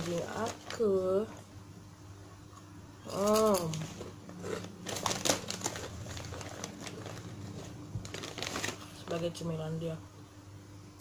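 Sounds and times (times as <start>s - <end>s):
plastic snack bag crinkling: 0.0s - 1.2s, 3.1s - 9.3s.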